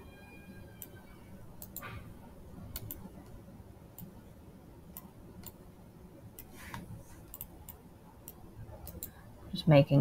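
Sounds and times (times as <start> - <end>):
computer mouse clicking: 1.6 - 2.0, 2.7 - 4.2, 4.9 - 5.6, 6.3 - 9.2.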